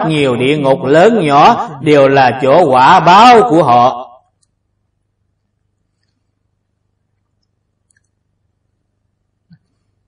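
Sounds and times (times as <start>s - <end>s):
man's voice: 0.0s - 4.2s
low steady hum: 0.0s - 10.0s.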